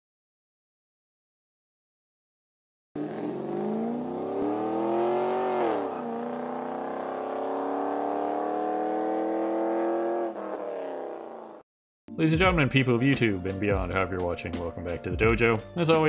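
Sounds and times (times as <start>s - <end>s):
car engine accelerating: 3.0s - 11.6s.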